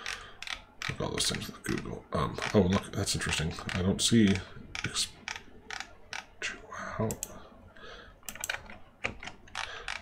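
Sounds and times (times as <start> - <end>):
keyboard and mouse clicks: 0.0 - 2.7, 3.6 - 6.3, 7.1 - 7.3, 8.2 - 10.0.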